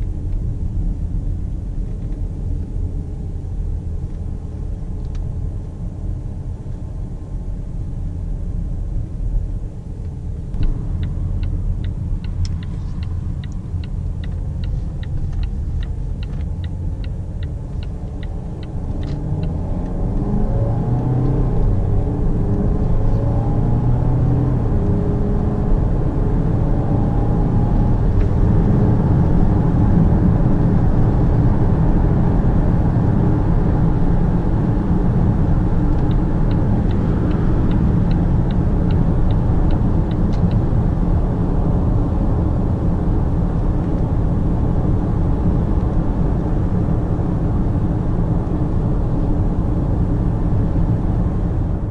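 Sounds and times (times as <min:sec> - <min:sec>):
diesel engine accelerating: 0:10.2 - 0:51.9
turn signal ticking: 0:10.5 - 0:20.3, 0:34.6 - 0:40.8.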